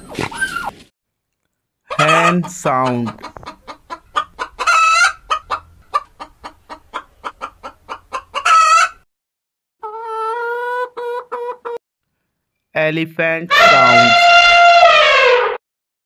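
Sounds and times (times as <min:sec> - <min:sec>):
hens clucking: 0:01.9 - 0:09.0, 0:09.8 - 0:11.8.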